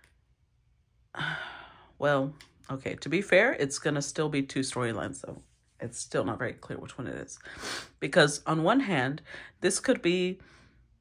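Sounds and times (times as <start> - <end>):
woman sighing: 1.2 - 1.9.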